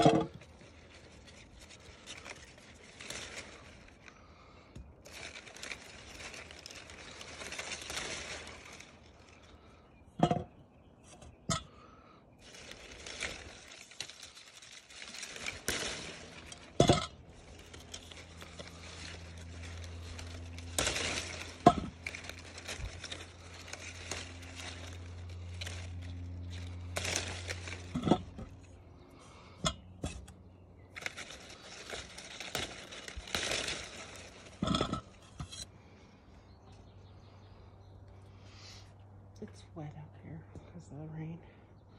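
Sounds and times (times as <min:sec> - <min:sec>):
wet leaves and branches rustling: 0:00.0 - 0:39.8
low steady hum: 0:00.0 - 0:41.9.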